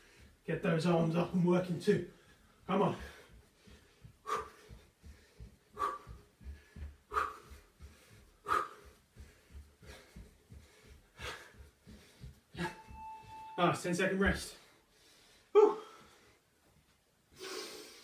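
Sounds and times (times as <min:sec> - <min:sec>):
man breathing hard: 0:00.0 - 0:00.4, 0:02.1 - 0:12.9, 0:14.7 - 0:16.5, 0:17.3 - 0:18.0
feet thudding on carpet: 0:03.0 - 0:13.4.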